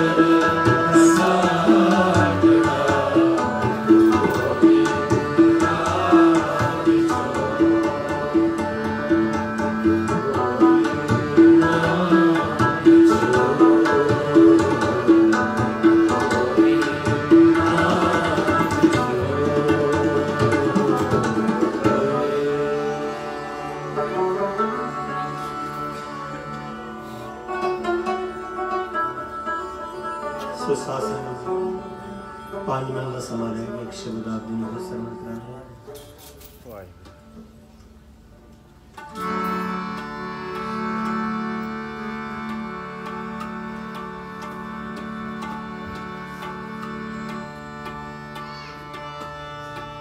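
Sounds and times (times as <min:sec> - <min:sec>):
tabla strokes: 0:00.0 - 0:30.6, 0:35.8 - 0:50.0
bowed string instruments: 0:00.0 - 0:50.0
sustained harmonium: 0:00.0 - 0:50.0.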